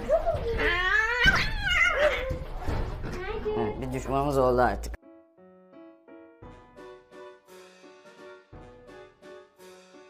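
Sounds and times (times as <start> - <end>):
cat yowling: 0.9 - 2.3.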